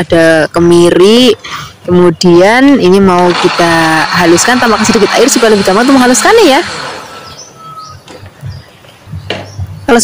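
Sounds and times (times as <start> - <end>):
faint bird chirps: 7.0 - 10.0.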